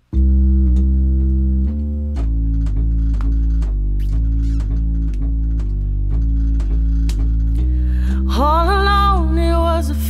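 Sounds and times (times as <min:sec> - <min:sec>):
keyboard playing low chords: 0:00.0 - 0:10.0.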